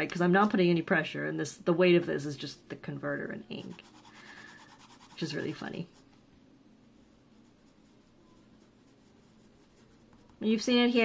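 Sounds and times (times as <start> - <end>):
faint fountain pen scratching paper: 3.6 - 6.0.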